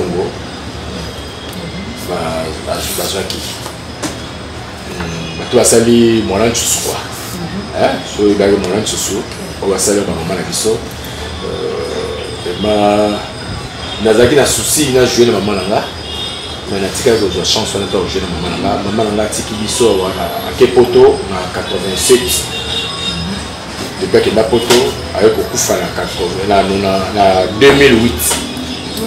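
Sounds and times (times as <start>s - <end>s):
background hum and hiss: 0.0s - 29.0s.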